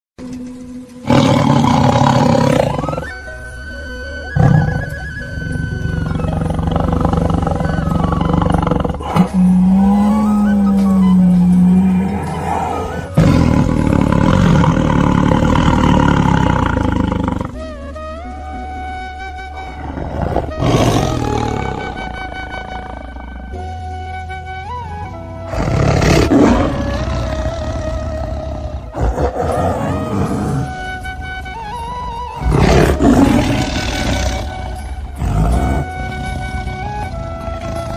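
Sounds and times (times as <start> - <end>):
music with steady tones: 0.2 - 37.9
tiger roaring: 1.0 - 3.3, 4.2 - 37.9.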